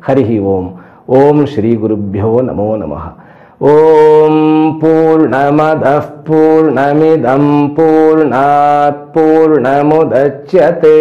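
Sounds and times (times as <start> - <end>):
man chanting a mantra: 0.0 - 11.0.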